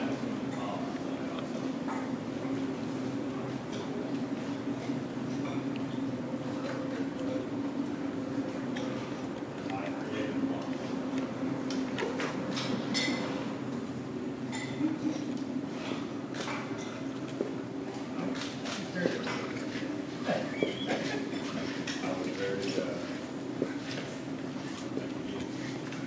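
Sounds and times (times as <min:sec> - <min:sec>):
background chatter: 0:00.0 - 0:12.1, 0:17.0 - 0:26.0
steady low hum: 0:00.0 - 0:26.0.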